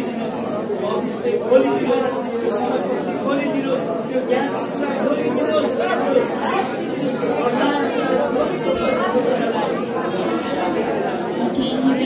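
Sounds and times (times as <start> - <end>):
many people praying aloud: 0.0 - 12.0.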